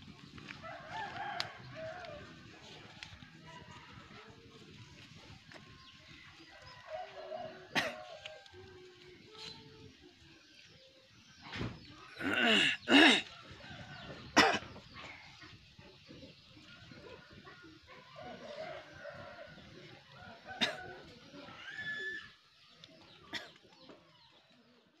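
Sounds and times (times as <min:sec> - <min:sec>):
rooster crowing: 0:00.6 - 0:02.3.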